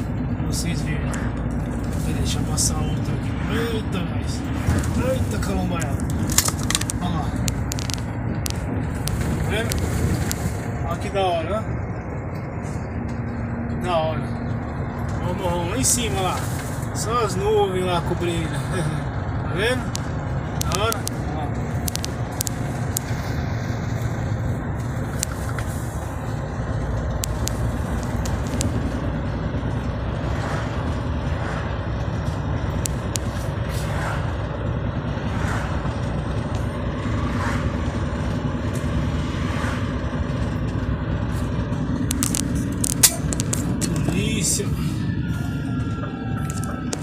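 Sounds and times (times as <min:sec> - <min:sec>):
engine and tyre rumble: 0:00.0 - 0:47.0.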